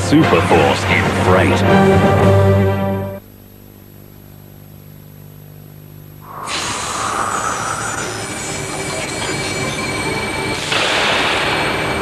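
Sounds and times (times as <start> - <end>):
wheels screeching on rail: 6.3 - 12.0.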